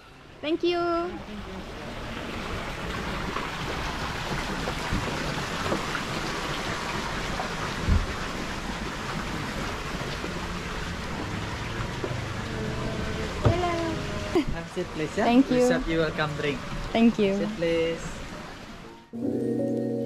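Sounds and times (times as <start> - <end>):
rushing hiss of water: 1.2 - 18.8.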